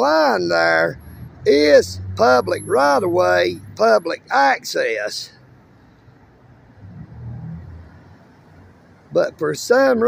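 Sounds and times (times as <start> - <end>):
suv engine rumbling: 0.0 - 10.0.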